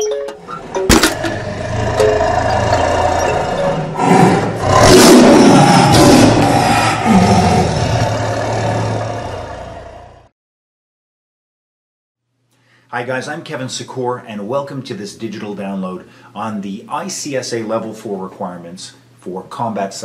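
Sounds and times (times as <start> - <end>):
low drone: 0.5 - 9.7
lion roaring: 0.6 - 10.3
cinematic impact hit: 0.8 - 1.7.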